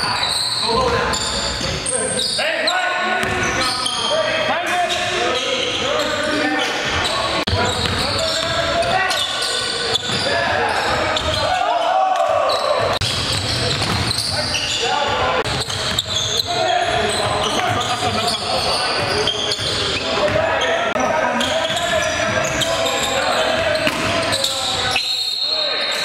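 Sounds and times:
players' voices: 0.0 - 26.0
basketball bouncing on hardwood: 13.0 - 14.1.

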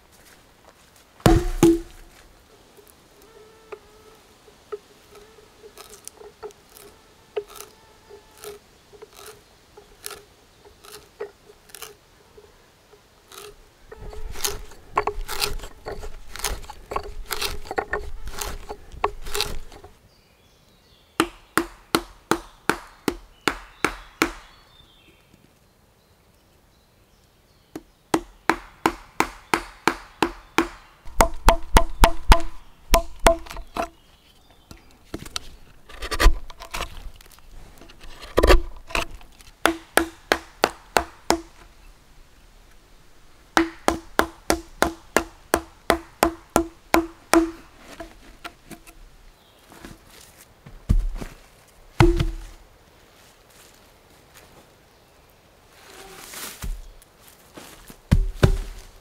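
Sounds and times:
mallet striking chisel knocks: 1.3 - 2.1, 28.2 - 33.8, 39.7 - 41.6, 43.6 - 47.6, 52.0 - 52.5.

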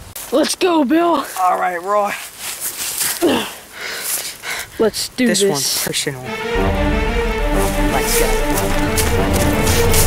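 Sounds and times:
dry leaves rustling and crackling: 0.0 - 6.0, 7.6 - 10.0.

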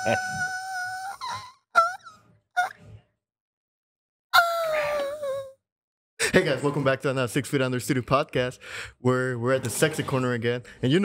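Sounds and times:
vocal yelps: 0.0 - 2.8, 4.4 - 5.6.

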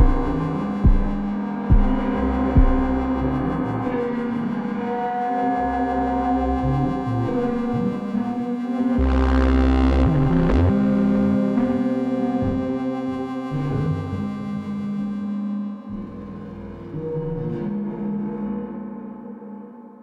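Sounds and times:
synthesizer bass notes: 0.0 - 15.4
droning synthesizer tones: 0.0 - 20.0.

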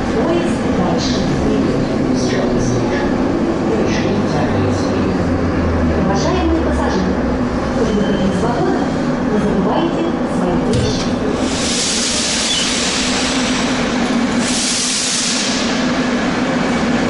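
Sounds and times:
metro train running rumble: 0.0 - 17.0
voices: 5.9 - 11.9.

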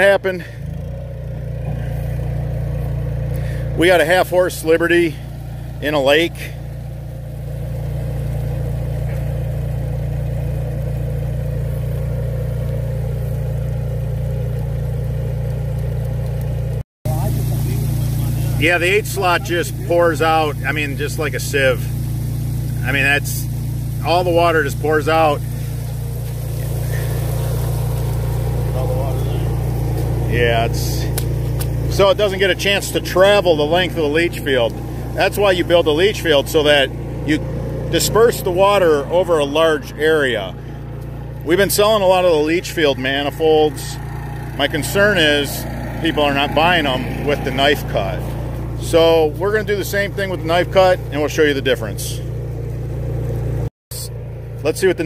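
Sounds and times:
water pump droning: 0.0 - 55.0.

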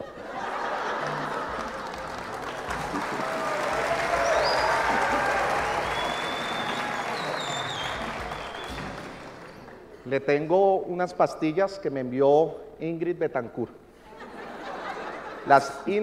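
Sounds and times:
audience applauding and cheering: 0.3 - 10.0
high whistles: 4.0 - 9.8.

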